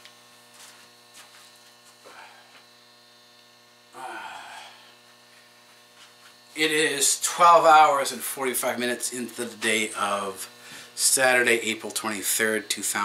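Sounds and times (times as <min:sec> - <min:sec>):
faint mains hum: 0:00.0 - 0:13.0.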